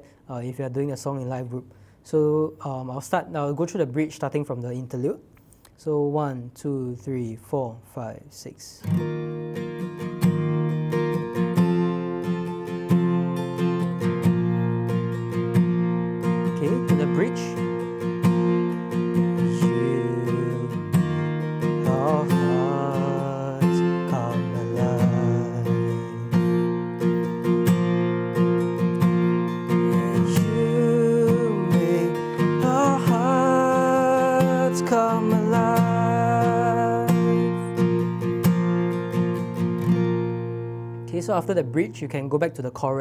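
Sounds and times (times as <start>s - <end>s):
acoustic guitar strumming: 8.8s - 43.0s.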